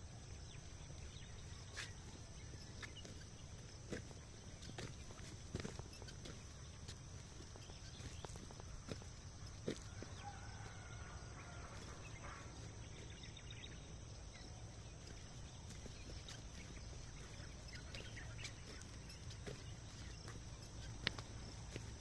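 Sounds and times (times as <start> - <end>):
faint poultry calls: 7.6 - 13.5.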